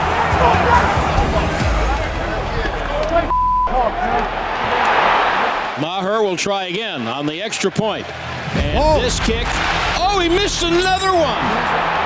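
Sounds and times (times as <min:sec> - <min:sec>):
stadium crowd noise: 0:00.0 - 0:12.0
censor bleep: 0:03.3 - 0:03.8
man talking: 0:08.6 - 0:11.6.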